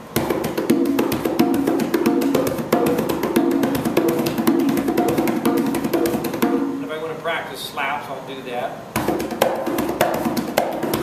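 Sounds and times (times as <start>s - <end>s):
conga played with hands: 0.0s - 7.0s, 8.8s - 11.0s.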